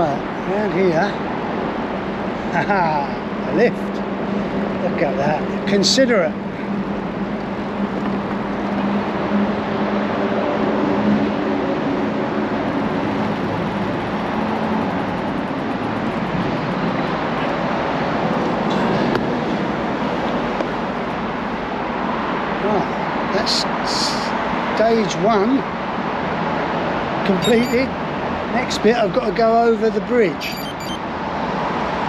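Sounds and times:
road traffic roar: 0.0 - 32.0.

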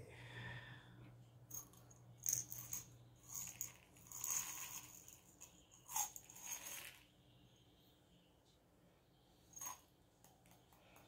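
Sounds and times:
crystal chips rattling and clicking: 1.5 - 7.0.

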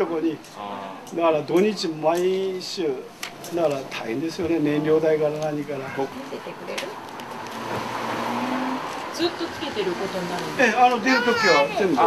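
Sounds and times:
car passing by: 6.4 - 12.0.

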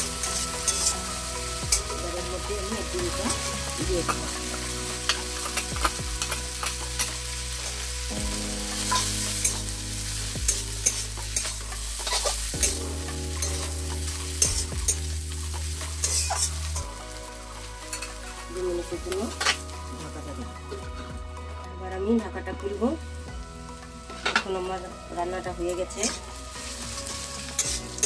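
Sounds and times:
spatula scraping a pan: 0.0 - 2.0, 8.7 - 16.8
greens sizzling in a pan: 0.0 - 28.0.

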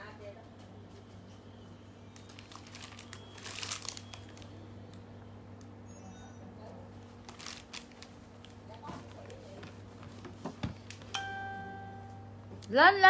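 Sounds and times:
rustling and crinkling: 2.1 - 4.5, 6.9 - 11.1
steady low hum: 6.9 - 13.0.

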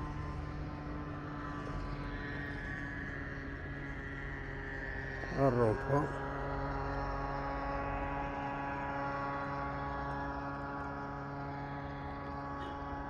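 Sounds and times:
steady mechanical hum: 0.0 - 13.0.

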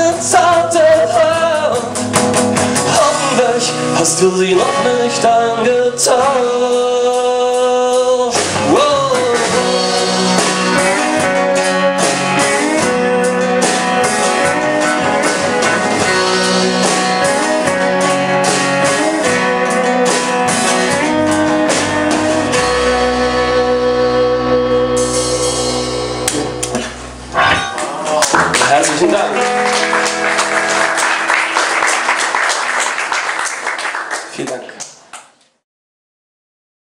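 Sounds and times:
rock band playing live: 0.0 - 34.2.

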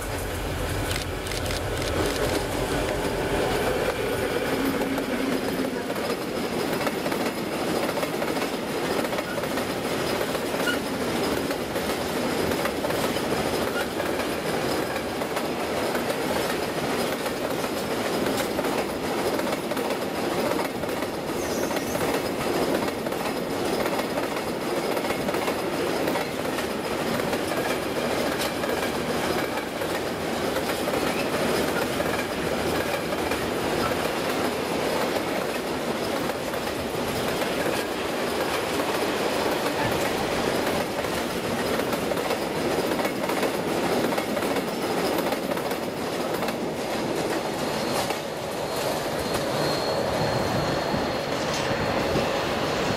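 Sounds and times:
wheels clacking over rail joints: 0.0 - 49.4
freight train rolling past: 0.0 - 52.9.

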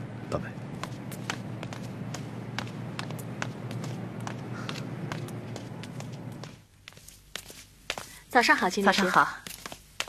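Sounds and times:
steady low hum: 0.0 - 10.0
footsteps on hard ground: 0.6 - 10.0.

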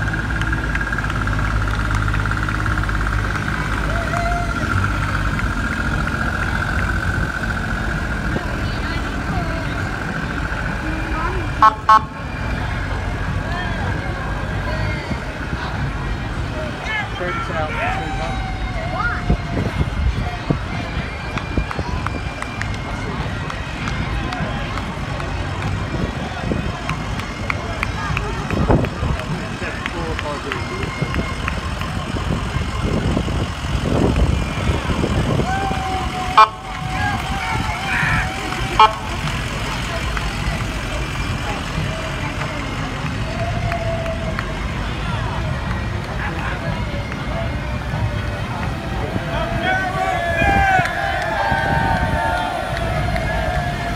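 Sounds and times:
ambulance engines running: 0.0 - 53.9
crowd chatter: 0.0 - 53.9
ambulance warning tones: 4.8 - 14.0, 17.4 - 43.3
sharp loud horn blasts: 11.6 - 12.2, 38.8 - 39.2.

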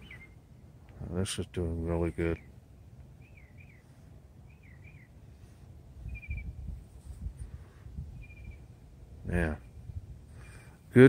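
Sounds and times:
bird chirping and trilling: 0.0 - 0.6, 3.2 - 5.3, 6.0 - 6.8, 8.1 - 8.8.

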